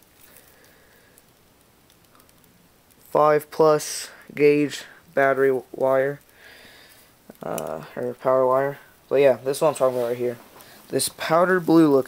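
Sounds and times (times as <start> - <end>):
light ticks: 0.6 - 3.0.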